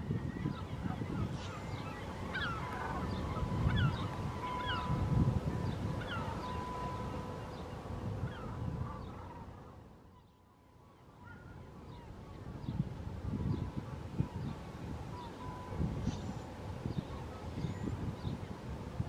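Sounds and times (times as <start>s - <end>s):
birds calling: 0.2s - 12.9s.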